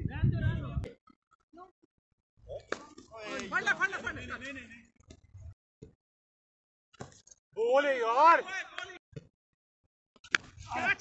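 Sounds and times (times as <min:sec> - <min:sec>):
men calling out: 0:03.1 - 0:04.4, 0:10.7 - 0:11.0.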